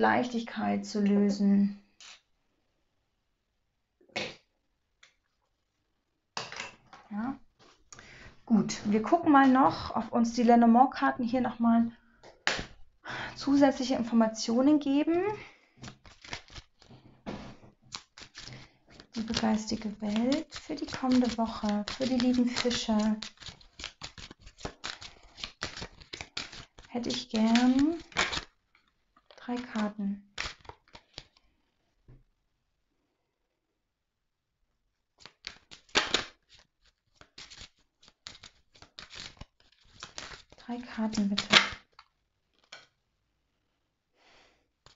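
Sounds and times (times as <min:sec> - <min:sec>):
cards rustling while shuffled: 0:15.3 - 0:31.4, 0:35.2 - 0:42.9
cards flicking and clicking: 0:15.8 - 0:16.9, 0:17.9 - 0:28.5, 0:29.3 - 0:31.4, 0:35.2 - 0:42.9.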